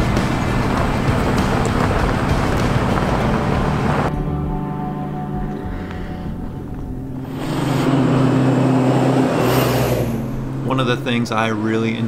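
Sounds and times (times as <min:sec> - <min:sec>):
tyres on dirt: 0:00.0 - 0:04.1
vehicle engine drone: 0:00.0 - 0:12.0.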